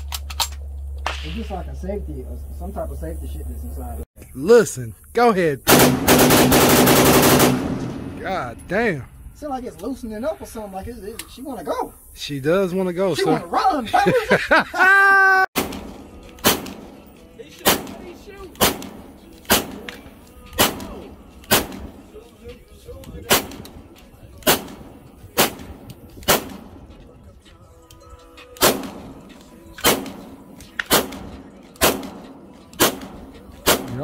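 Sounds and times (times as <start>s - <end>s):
pistol shots with echo: 5.7s - 8.2s, 15.6s - 20.0s, 20.6s - 22.1s, 23.2s - 23.8s, 24.4s - 26.8s, 28.6s - 34.0s.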